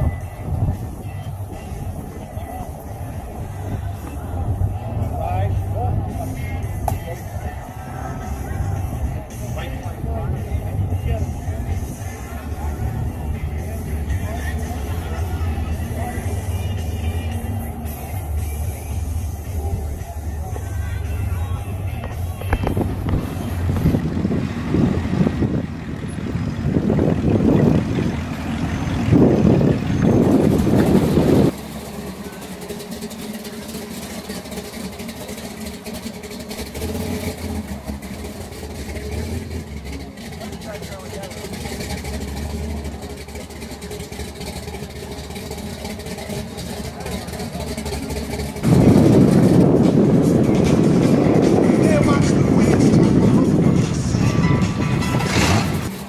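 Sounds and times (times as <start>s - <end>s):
car engines rumbling past: 0.0s - 56.0s.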